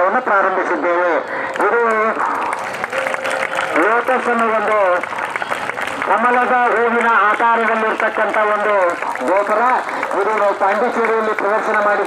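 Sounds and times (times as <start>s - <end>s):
crowd clapping: 1.4s - 12.0s.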